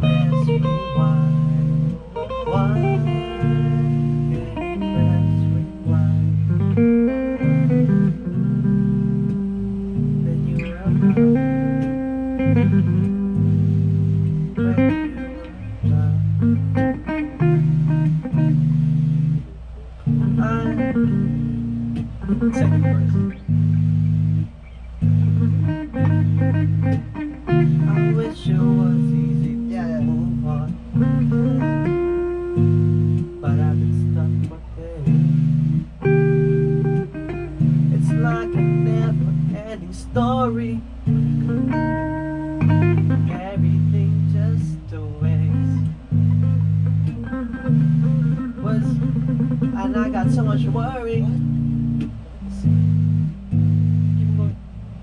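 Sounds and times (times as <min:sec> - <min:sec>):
electric bass low notes: 0:00.0 - 0:55.0
electric guitar picked notes: 0:00.0 - 0:55.0.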